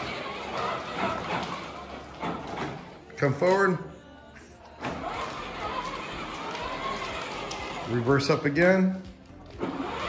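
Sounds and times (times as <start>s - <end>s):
electric toy motors whirring: 9.4s - 10.0s.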